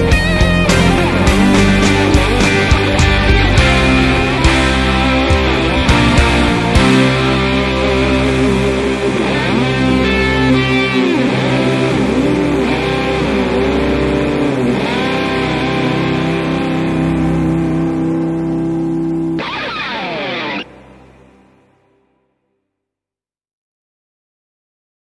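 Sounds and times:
rock band chord: 0:00.0 - 0:18.2, 0:19.3 - 0:21.6
electric guitar lead bending: 0:00.0 - 0:21.7.

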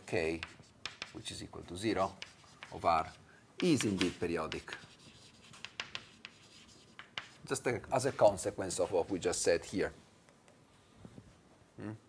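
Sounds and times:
chalk scratching on blackboard: 0:00.2 - 0:09.5.

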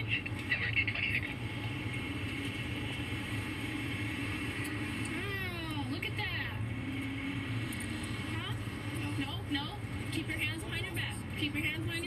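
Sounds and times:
low vehicle hum: 0:00.0 - 0:12.0
indistinct talking: 0:08.2 - 0:12.0.

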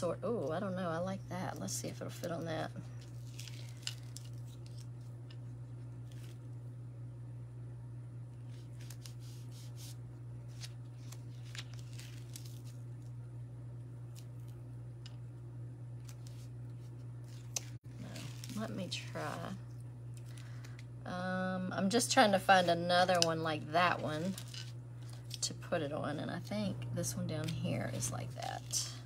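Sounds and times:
steady low hum: 0:00.0 - 0:29.0
plastic sheet rustling: 0:03.0 - 0:05.1, 0:08.5 - 0:12.8, 0:16.0 - 0:19.6, 0:23.8 - 0:25.3.

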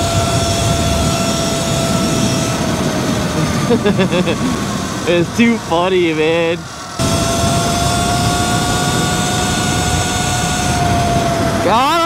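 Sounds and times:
electric motor whine: 0:00.0 - 0:12.0
loud wind rush: 0:00.0 - 0:12.0.

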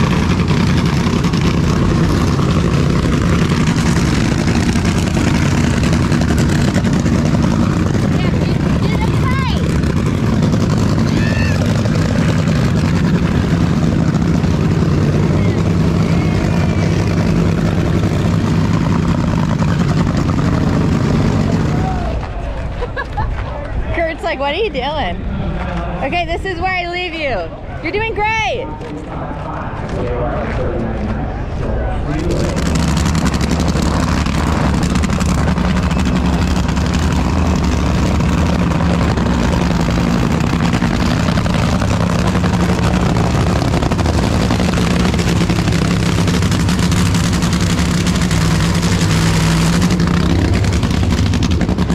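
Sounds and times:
engine drone: 0:00.0 - 0:51.9.

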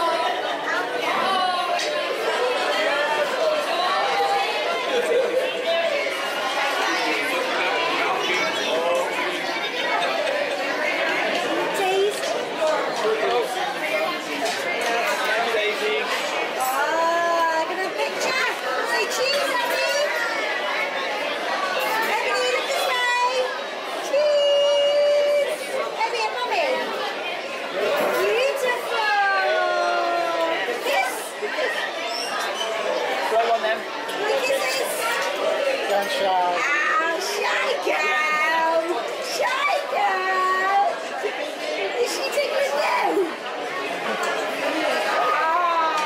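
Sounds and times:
restaurant crowd chatter: 0:00.0 - 0:46.0.

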